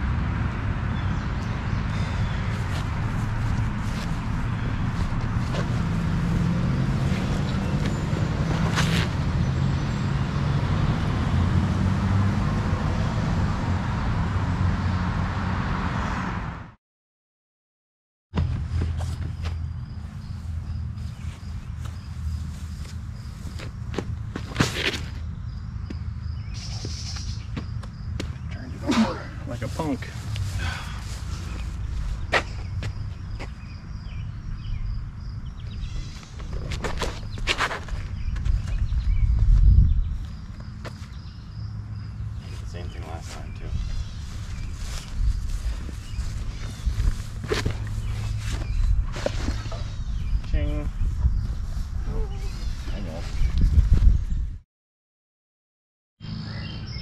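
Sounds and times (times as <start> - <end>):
footsteps on concrete: 2.6 - 6.0, 18.4 - 25.2, 26.8 - 28.5, 30.0 - 33.6, 36.2 - 41.3, 43.3 - 49.8
wind rumble on microphone: 30.2 - 42.6, 43.4 - 54.6.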